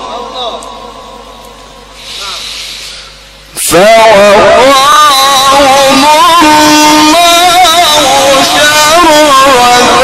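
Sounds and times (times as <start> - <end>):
microphone amplifier hiss: 0.0 - 10.0.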